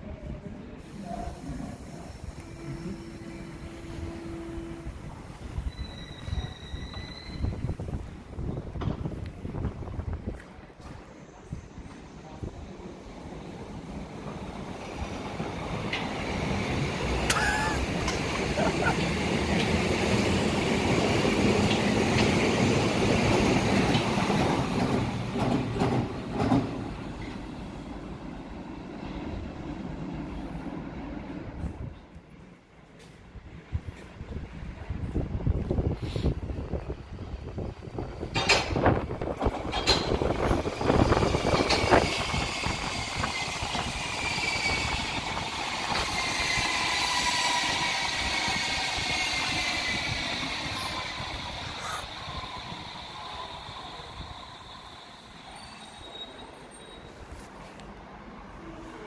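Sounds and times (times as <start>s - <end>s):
train passing: 0.0s - 59.0s
train drive whine: 0.2s - 57.2s
train braking: 0.8s - 9.2s, 38.0s - 57.4s
wheel clacks over rail joints: 38.3s - 40.5s.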